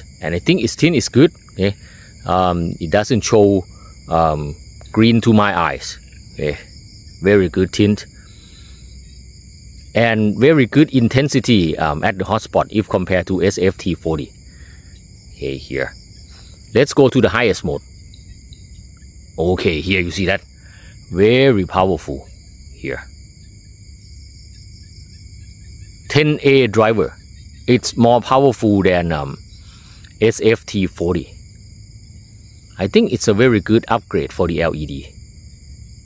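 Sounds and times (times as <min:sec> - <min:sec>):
crickets trilling: 0:00.0 - 0:36.0.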